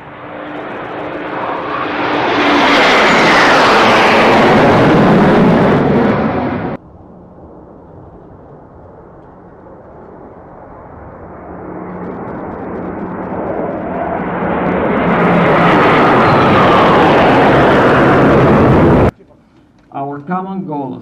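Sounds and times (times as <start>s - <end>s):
fighter jets flying past: 0.0s - 19.2s.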